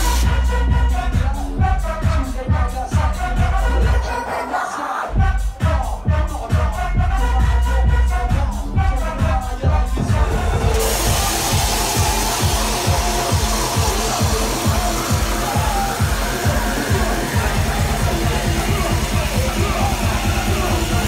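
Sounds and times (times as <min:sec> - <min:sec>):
fast kick-drum beat: 0:00.0 - 0:04.0, 0:05.2 - 0:21.0
electronic dance music: 0:00.0 - 0:21.0
continuous low bass: 0:06.2 - 0:21.0.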